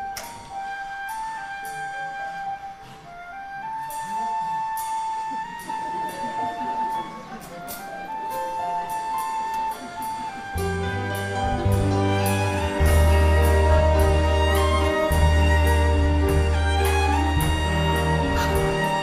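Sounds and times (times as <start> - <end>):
orchestra playing show tune: 0.0 - 19.0.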